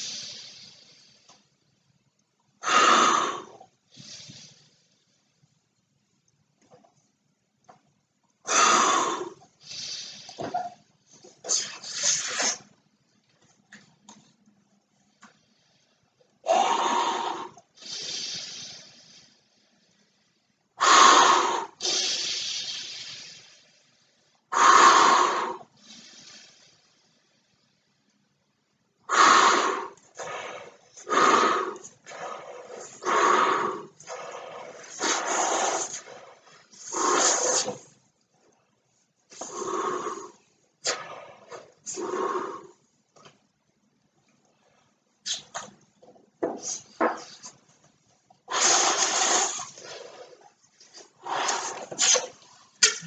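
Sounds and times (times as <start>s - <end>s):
breath blown into balloon: 0.0s - 1.4s, 2.6s - 5.0s, 8.4s - 10.8s, 11.4s - 12.8s, 16.4s - 20.0s, 20.8s - 23.8s, 24.5s - 27.0s, 29.1s - 38.0s, 39.3s - 42.9s, 45.2s - 45.6s, 48.5s - 53.0s.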